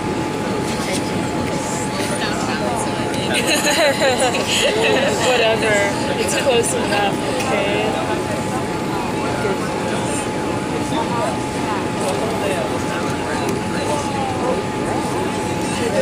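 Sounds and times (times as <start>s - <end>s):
airplane cabin roar: 0.0s - 16.0s
thin steady whine: 0.0s - 16.0s.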